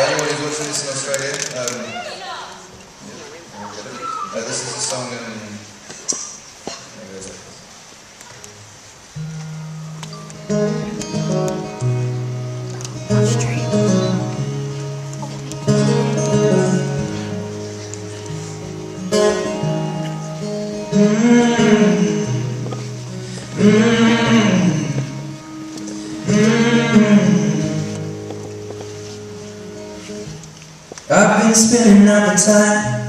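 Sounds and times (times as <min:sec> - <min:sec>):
acoustic guitar chords: 0:08.5 - 0:33.0
man singing wordless notes: 0:20.8 - 0:28.2, 0:31.1 - 0:33.0.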